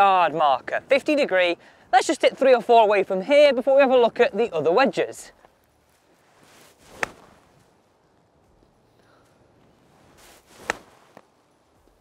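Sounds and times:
club swing swish: 6.7 - 7.4, 10.2 - 11.2
golf wedge striking ball: 6.9 - 7.3, 10.6 - 11.0.

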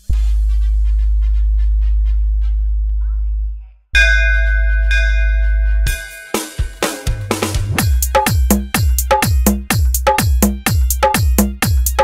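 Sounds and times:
sub-bass drone: 0.0 - 6.0
bell-like chime: 4.0 - 8.2
sharp drum hits: 5.9 - 11.4.

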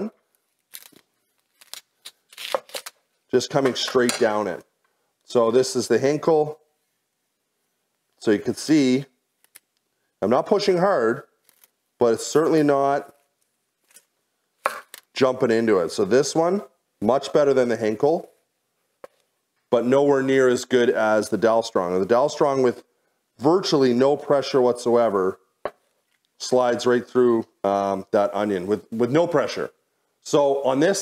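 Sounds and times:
knife crunching through onion: 0.7 - 3.0.

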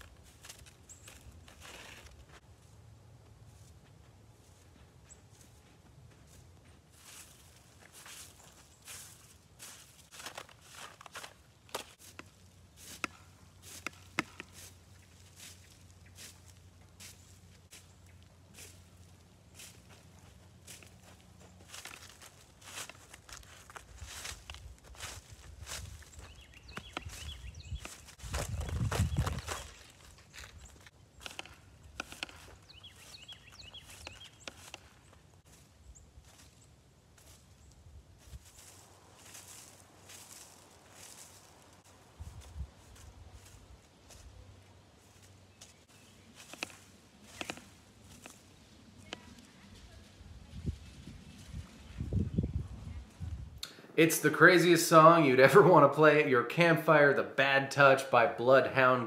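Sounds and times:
footsteps crunching on snow: 0.0 - 52.2.

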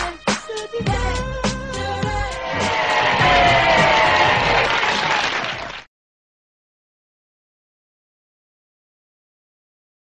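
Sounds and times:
crowd applause and cheering: 2.0 - 5.9.

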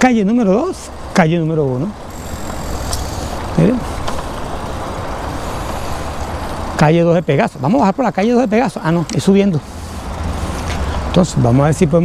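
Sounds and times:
wind and road noise: 0.0 - 12.0.

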